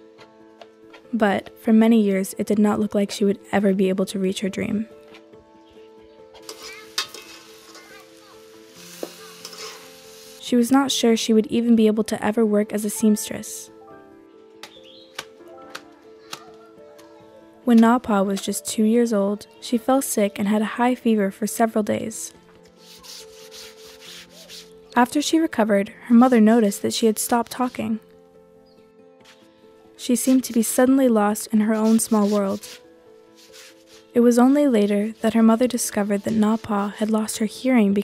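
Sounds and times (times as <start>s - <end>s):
soft background music: 0.0s - 38.0s
brush scrubbing cloth on floor: 6.4s - 10.4s, 22.8s - 24.8s, 30.2s - 30.7s, 31.7s - 37.3s
metal spatula stirring: 6.4s - 10.4s
cabbage sizzling in a wok: 6.4s - 10.5s.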